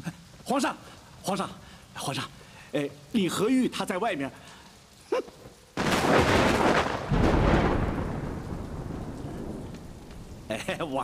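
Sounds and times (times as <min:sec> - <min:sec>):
deep thunder rumble: 0:05.8 - 0:11.0
thunderclap: 0:05.8 - 0:11.0.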